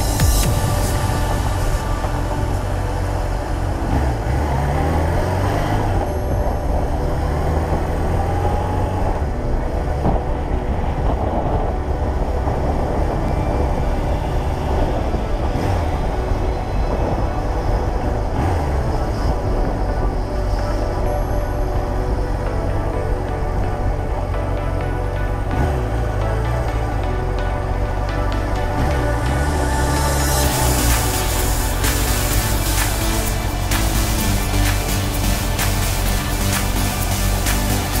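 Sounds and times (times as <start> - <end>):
background music: 0.0 - 38.0
motorcycle engine running: 0.0 - 38.0.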